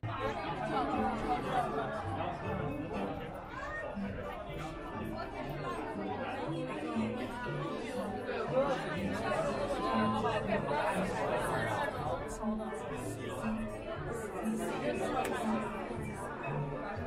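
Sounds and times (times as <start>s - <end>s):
background music with low notes: 0.0s - 17.0s
crowd talking: 0.0s - 17.0s.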